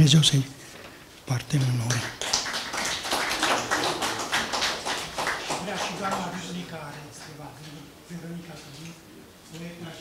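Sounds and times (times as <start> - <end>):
audience applauding: 1.6 - 6.5.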